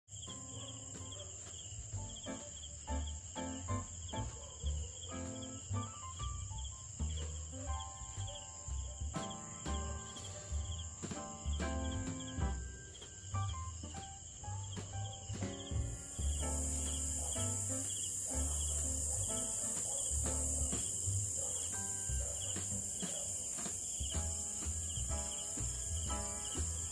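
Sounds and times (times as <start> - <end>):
crickets chirping: 0.1 - 26.9
instrumental music: 0.2 - 26.9.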